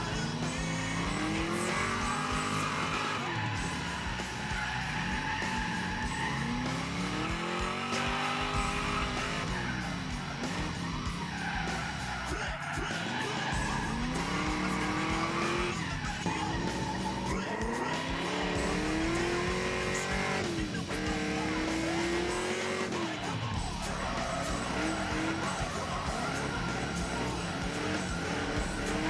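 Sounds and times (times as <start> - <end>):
car engine revving: 0.0 - 29.0
tyres skidding: 0.0 - 29.0.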